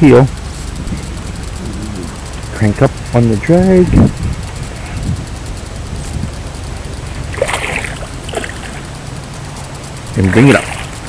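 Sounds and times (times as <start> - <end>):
wind: 0.0 - 11.0
water at the shore: 7.0 - 8.9, 10.2 - 11.0.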